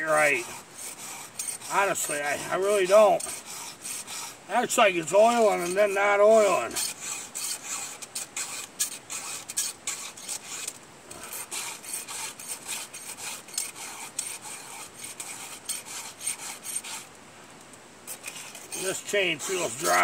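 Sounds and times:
file rasping on chainsaw chain: 0.0 - 17.1, 18.1 - 20.0.

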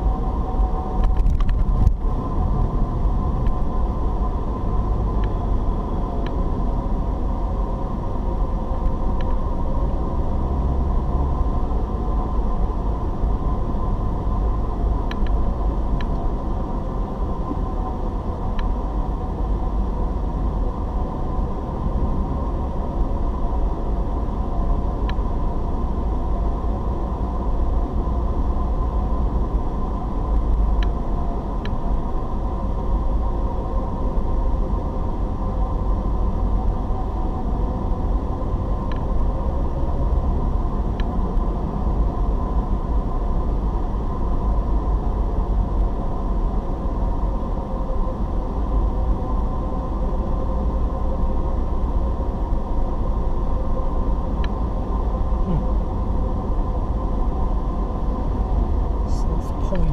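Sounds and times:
car engine rumble: 0.0 - 59.9
faint steady hum: 0.0 - 59.9
road noise: 0.0 - 59.9.

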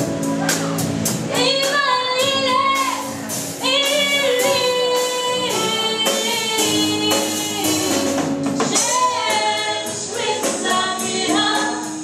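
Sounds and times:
live band playing: 0.0 - 12.0
girl singing into a microphone: 1.3 - 8.0.

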